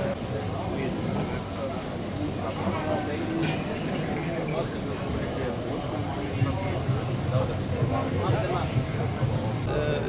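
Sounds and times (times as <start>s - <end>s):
people talking indistinctly: 0.0s - 10.0s
steady low hum: 0.0s - 10.0s.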